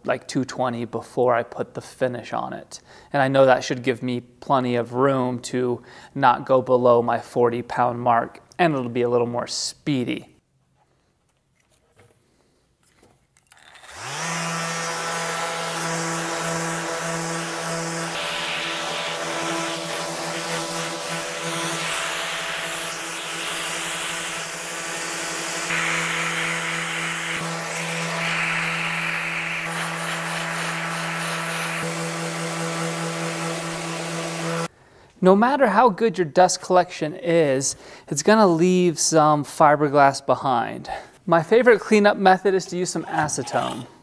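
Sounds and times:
orbital sander running: 0:13.5 - 0:34.7
sander pad scraping surface: 0:15.3 - 0:24.1.

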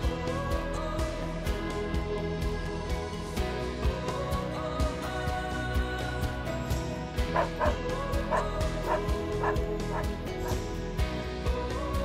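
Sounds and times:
background music with steady beat: 0:00.0 - 0:12.0
dog barking: 0:07.4 - 0:10.6.

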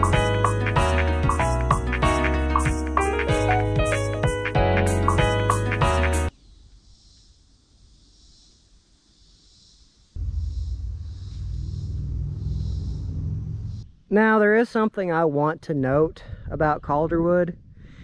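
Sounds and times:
background music: 0:00.0 - 0:06.3
wind rumble on microphone: 0:10.2 - 0:14.1, 0:15.8 - 0:18.0.

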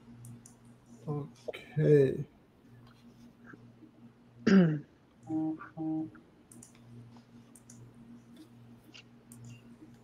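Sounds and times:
low steady hum: 0:00.0 - 0:10.0
computer mouse clicking: 0:00.2 - 0:00.6, 0:06.5 - 0:06.9, 0:07.5 - 0:10.0.

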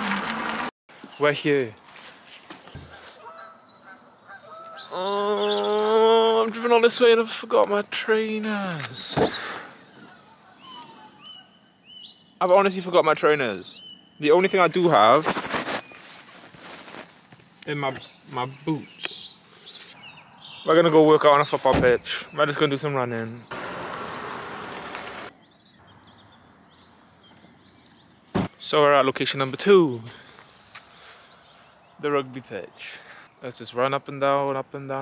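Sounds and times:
songbirds chirping: 0:00.9 - 0:35.0
faint bird chirps: 0:01.9 - 0:05.9, 0:09.3 - 0:14.5.

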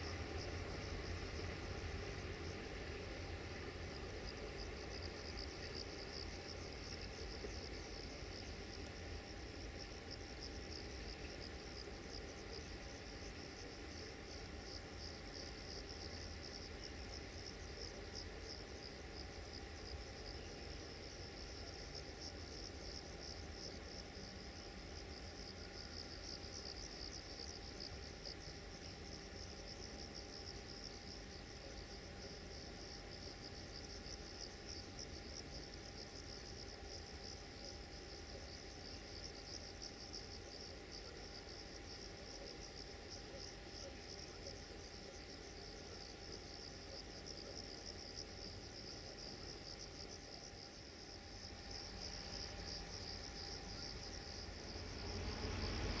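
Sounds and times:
crickets chirring: 0:00.0 - 0:56.0.

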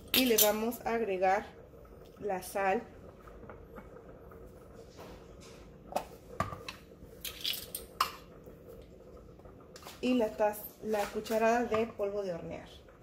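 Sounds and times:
faint steady hum: 0:00.0 - 0:13.0.

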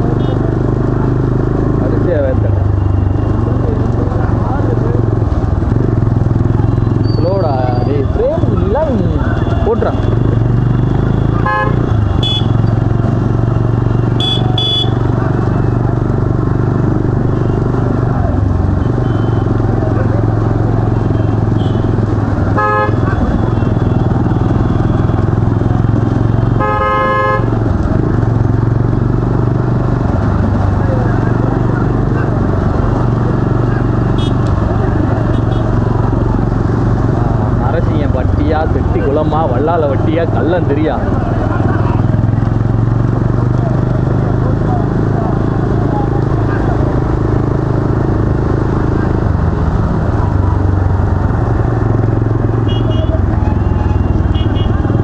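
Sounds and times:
motorcycle engines droning: 0:00.0 - 0:55.0
motorcycle horn toots: 0:11.0 - 0:12.7, 0:13.9 - 0:15.1, 0:21.1 - 0:22.0, 0:22.6 - 0:24.9, 0:26.5 - 0:27.6, 0:34.1 - 0:34.4, 0:35.3 - 0:35.8, 0:52.6 - 0:55.0.

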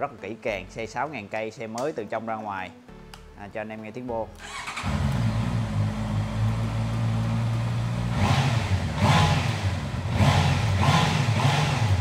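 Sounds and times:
motorcycle engine idling and revving: 0:04.4 - 0:12.0.

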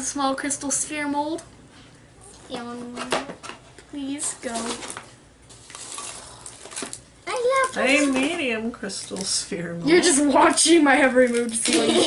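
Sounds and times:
packing material rustling: 0:04.4 - 0:08.2.

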